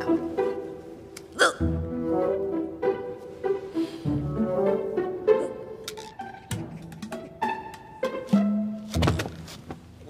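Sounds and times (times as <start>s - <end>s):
soft background music: 0.0s - 10.0s
hiccup: 1.3s - 1.6s.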